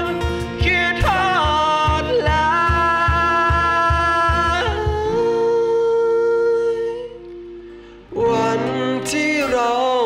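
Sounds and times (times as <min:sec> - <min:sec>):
cajon beats: 0:00.0 - 0:06.0
acoustic guitar chords: 0:00.0 - 0:10.0.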